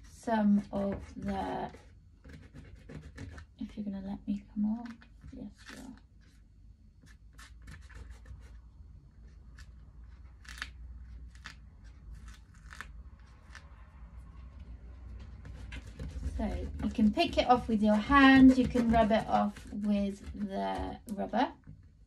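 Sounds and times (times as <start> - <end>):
scratchy rubbing on paper: 0.0 - 3.9, 4.8 - 13.7, 14.9 - 21.1.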